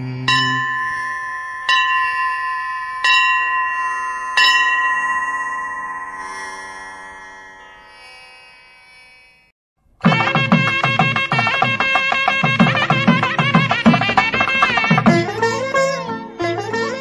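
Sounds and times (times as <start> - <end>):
metallic bell chime: 0.2 - 9.5.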